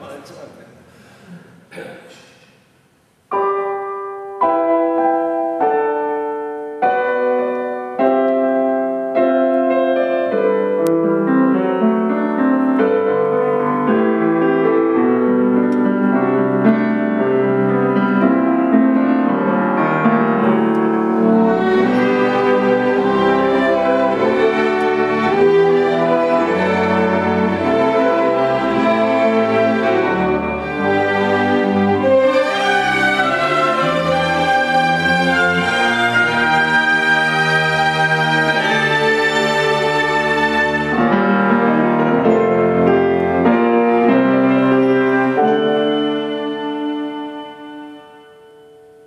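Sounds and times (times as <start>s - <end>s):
orchestral strings: 3.3s - 48.6s
grand piano solo: 3.3s - 49.0s.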